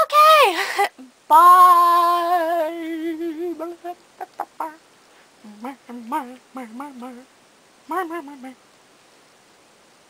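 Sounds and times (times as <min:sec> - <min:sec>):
woman singing a wavering note: 0:07.9 - 0:08.6.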